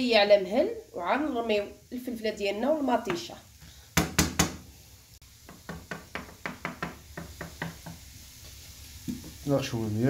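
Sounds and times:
wooden spoon knocking frying pan: 4.0 - 4.7, 5.4 - 8.1.

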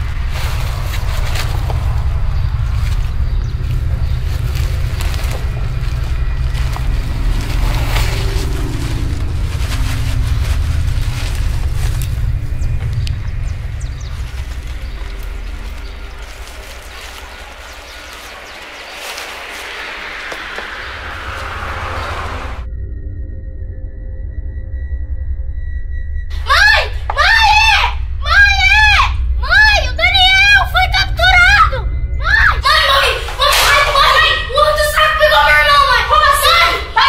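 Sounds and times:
wind buffeting microphone: 0.0 - 22.7
rising hiss: 16.8 - 22.6.

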